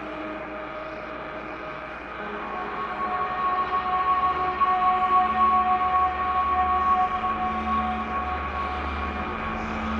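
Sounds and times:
ambient synthesizer drones: 0.0s - 9.9s.

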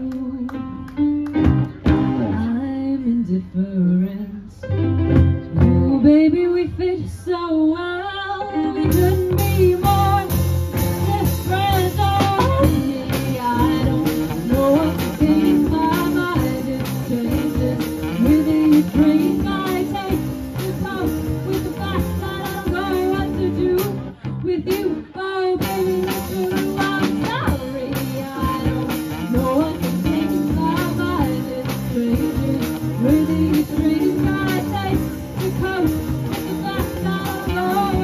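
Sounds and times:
electric guitar: 0.0s - 2.5s, 8.4s - 38.0s
drums: 0.0s - 3.1s, 4.6s - 7.4s, 8.4s - 38.0s
woman singing: 0.0s - 4.7s, 5.6s - 38.0s
bass guitar: 0.0s - 38.0s.

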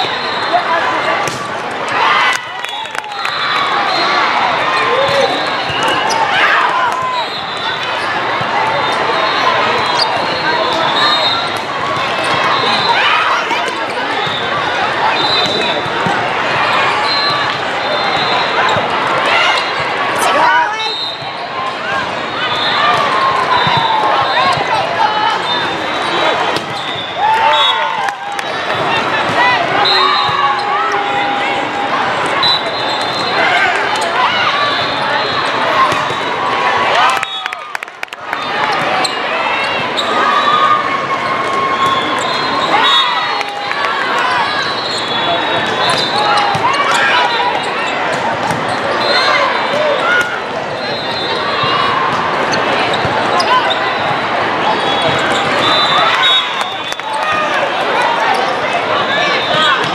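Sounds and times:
players calling: 0.0s - 59.9s
spectators chattering and cheering: 0.0s - 59.9s
volleyball contacts and bounces: 1.2s - 1.7s, 26.3s - 27.1s, 45.6s - 48.9s.

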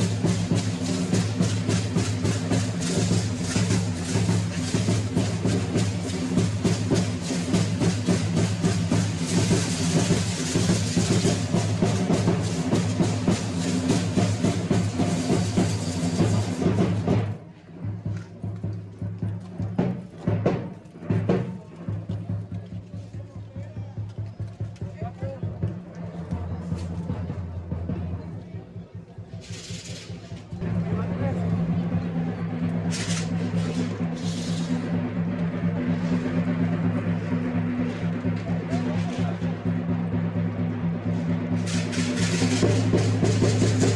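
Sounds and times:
rattling hiss of costumes: 0.0s - 17.2s, 29.3s - 30.6s, 32.8s - 39.3s, 41.1s - 43.9s
drum beating fast rhythm: 0.0s - 17.4s, 19.0s - 43.9s.

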